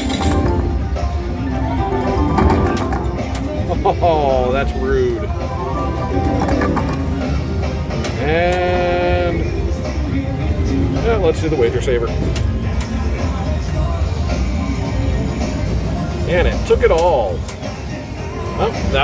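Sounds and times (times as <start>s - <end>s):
slot machines playing jingles: 0.0s - 7.7s.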